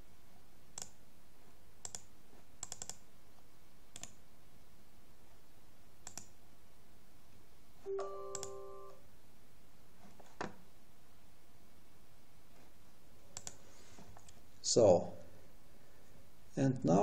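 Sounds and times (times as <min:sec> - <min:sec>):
computer mouse clicks: 0:00.8 - 0:01.0, 0:01.8 - 0:03.0, 0:03.9 - 0:04.2, 0:06.0 - 0:06.4, 0:13.3 - 0:13.6.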